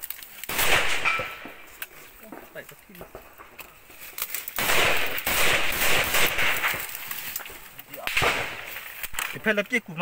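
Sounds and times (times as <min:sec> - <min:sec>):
small-arms gunfire: 0:00.5 - 0:01.6, 0:04.6 - 0:06.9, 0:08.0 - 0:08.7.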